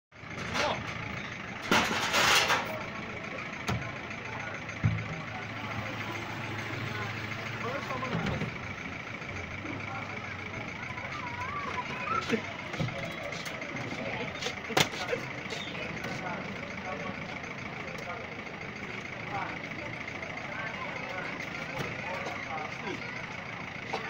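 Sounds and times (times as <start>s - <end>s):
vehicle engine humming: 0.1s - 24.0s.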